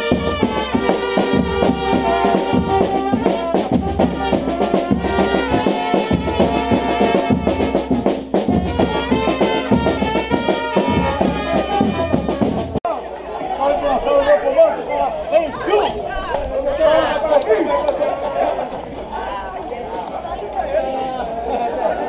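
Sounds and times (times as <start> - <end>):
bass drum beat: 0.0 - 12.8
trumpets playing tune: 0.0 - 12.8.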